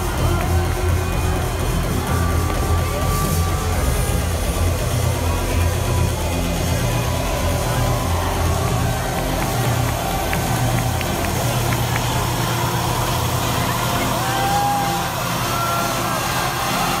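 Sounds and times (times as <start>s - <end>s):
low bass hum: 0.0s - 15.3s
crowd voices and cheering: 0.0s - 17.0s.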